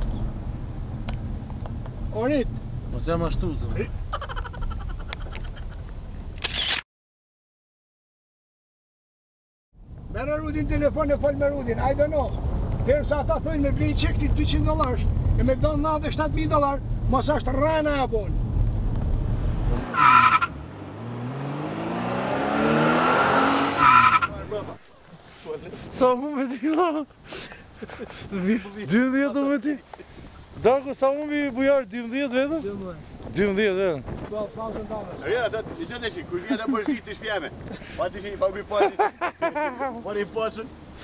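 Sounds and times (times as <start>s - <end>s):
loud brief rustle: 6.4s - 6.8s
car rumble: 9.8s - 24.8s
engine note rising: 18.4s - 24.8s
short high squeal: 19.8s - 20.6s.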